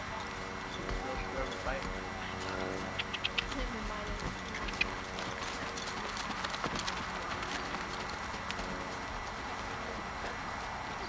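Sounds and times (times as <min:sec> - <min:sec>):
horse hoof steps: 0:00.2 - 0:11.0.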